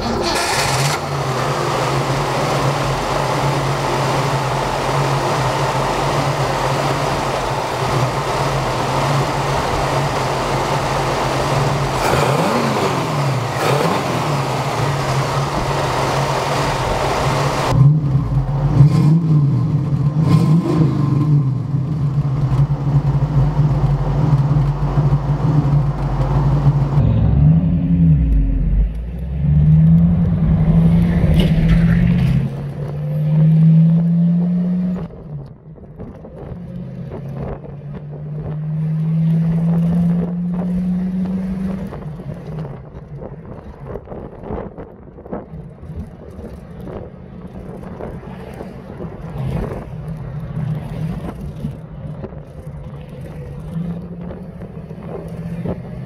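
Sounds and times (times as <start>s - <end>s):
car engine idling and revving: 0.0s - 56.0s.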